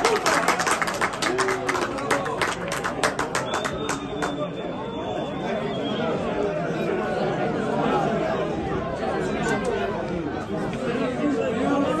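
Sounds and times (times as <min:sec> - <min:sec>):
people chattering excitedly: 0:00.0 - 0:12.0.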